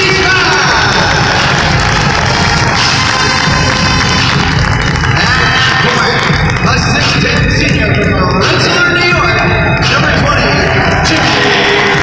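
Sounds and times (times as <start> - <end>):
crowd cheering: 0.0 - 12.0
loud music over public address: 0.0 - 12.0.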